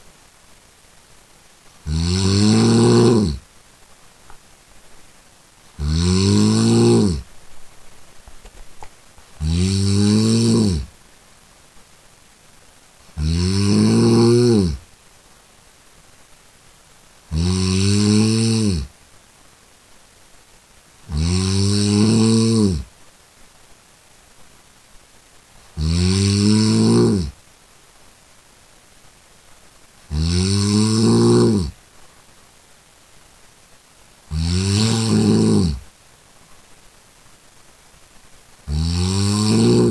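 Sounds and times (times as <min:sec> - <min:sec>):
loud human snore: 0:01.8 - 0:03.4, 0:05.8 - 0:07.3, 0:09.4 - 0:10.9, 0:13.2 - 0:14.8, 0:17.3 - 0:18.9, 0:21.1 - 0:22.9, 0:25.7 - 0:27.4, 0:30.1 - 0:31.8, 0:34.3 - 0:35.8, 0:38.7 - 0:39.9.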